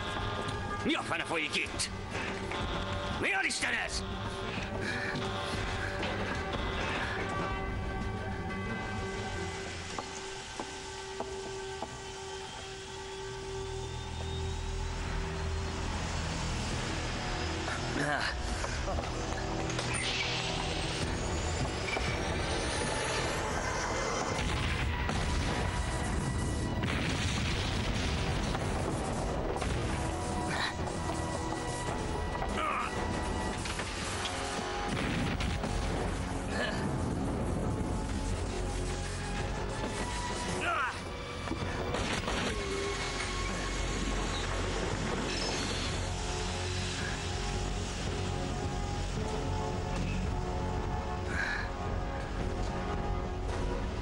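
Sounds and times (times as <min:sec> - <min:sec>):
tense film music: 0:00.0 - 0:54.0
electronic whine: 0:09.4 - 0:17.8
heavy rumble with booms: 0:20.4 - 0:54.0.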